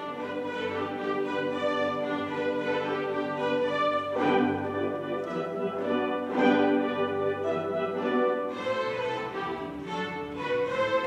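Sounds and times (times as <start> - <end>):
string orchestra bowed chords: 0.0 - 11.0.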